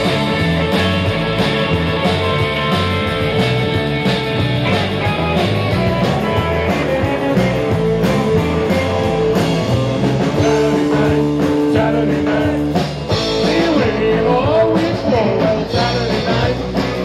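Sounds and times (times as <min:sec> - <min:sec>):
blues-rock band playing: 0:00.0 - 0:17.0
electric guitars: 0:00.0 - 0:17.0.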